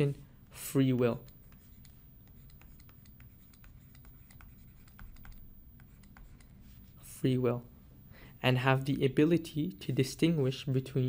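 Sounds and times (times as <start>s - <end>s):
stylus clicking on drawing tablet: 1.1s - 6.9s.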